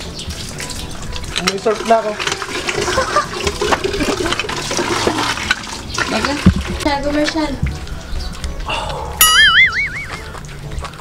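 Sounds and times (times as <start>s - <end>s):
water splashing from faucet: 0.0s - 8.1s.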